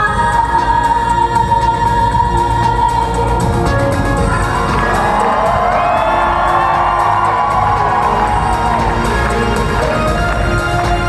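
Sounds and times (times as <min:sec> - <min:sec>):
loud live concert music: 0:00.0 - 0:11.0
audience cheering: 0:04.5 - 0:11.0.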